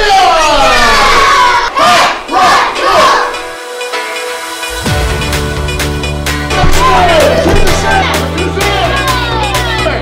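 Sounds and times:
children shouting together: 0.0 - 3.4.

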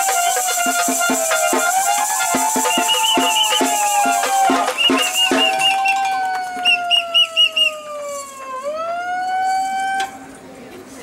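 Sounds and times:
shaker rattles: 0.0 - 6.8
warbling siren tone: 0.0 - 10.2.

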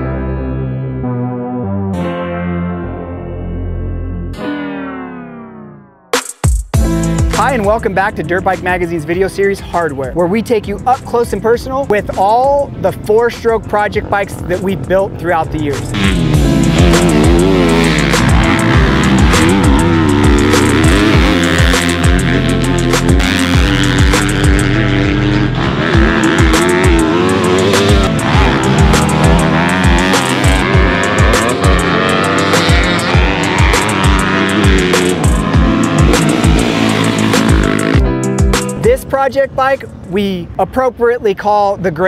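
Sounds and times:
loud background music with beat: 6.1 - 12.4, 15.6 - 39.0
dirt bike engine revving: 15.7 - 38.8.

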